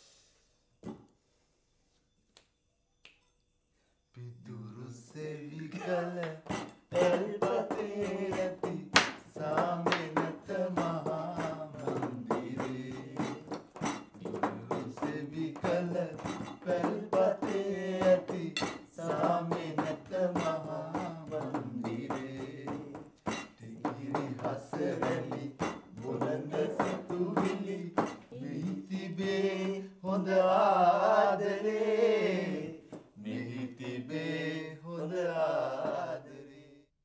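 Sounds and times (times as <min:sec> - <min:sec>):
cutlery clinking on plates: 0:05.7 - 0:28.9
tableware clinks: 0:06.5 - 0:07.0, 0:18.6 - 0:18.9, 0:23.3 - 0:23.6.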